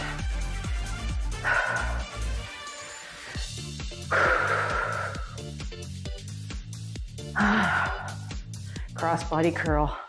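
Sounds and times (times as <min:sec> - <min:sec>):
upbeat electronic music: 0:00.0 - 0:04.1, 0:04.8 - 0:09.9.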